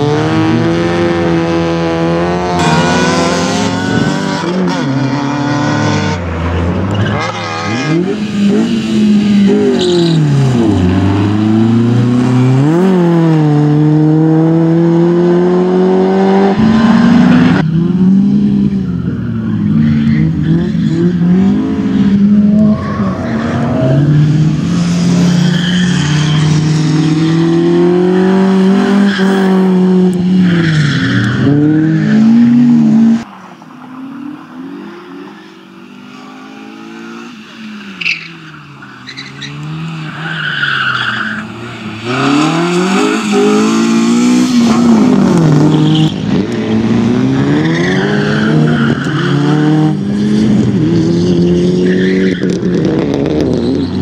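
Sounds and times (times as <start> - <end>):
car engine revving hard: 42.0 - 45.8.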